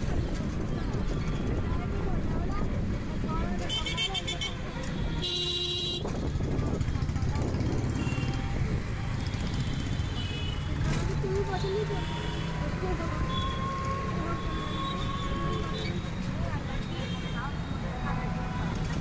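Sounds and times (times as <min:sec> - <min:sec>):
street traffic: 0:00.0 - 0:19.0
vehicle horn blast: 0:03.7 - 0:06.0.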